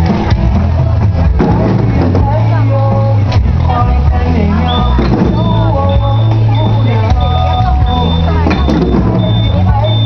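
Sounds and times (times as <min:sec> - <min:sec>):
drum strokes: 0:00.0 - 0:02.4, 0:04.8 - 0:09.7
distorted music over loudspeakers: 0:00.0 - 0:10.0
voices: 0:01.8 - 0:10.0
high beeping tone: 0:04.7 - 0:10.0.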